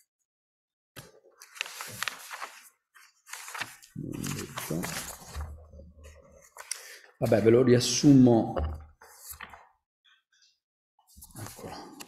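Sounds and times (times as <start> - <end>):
paper pages rustling: 1.0 - 7.0, 9.0 - 9.7, 11.1 - 12.0.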